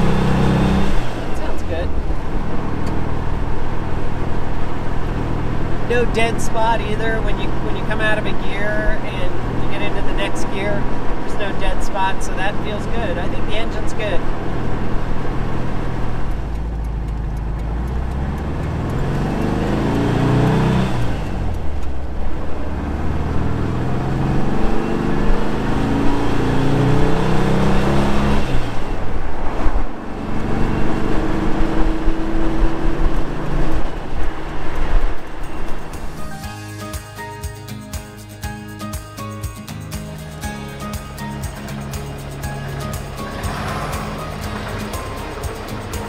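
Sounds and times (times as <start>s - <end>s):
car engine accelerating: 0.0s - 37.8s, 39.4s - 46.0s.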